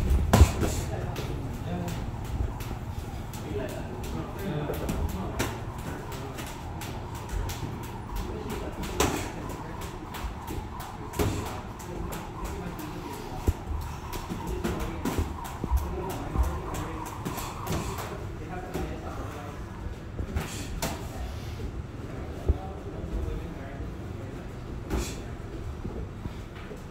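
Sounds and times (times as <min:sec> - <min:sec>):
gym background noise: 0:00.0 - 0:26.9.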